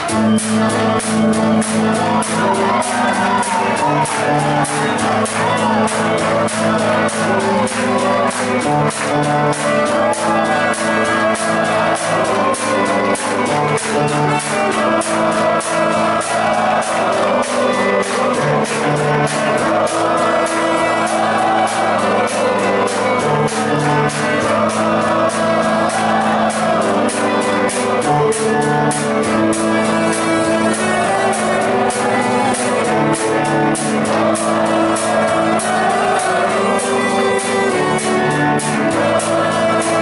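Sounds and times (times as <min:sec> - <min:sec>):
bass notes: 0:00.0 - 0:40.0
drum kit beat: 0:00.0 - 0:40.0
electric guitars: 0:00.0 - 0:40.0.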